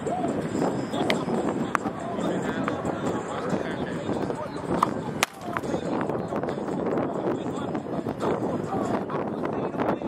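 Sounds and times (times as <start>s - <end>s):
tennis ball hitting court: 4.8s - 5.7s.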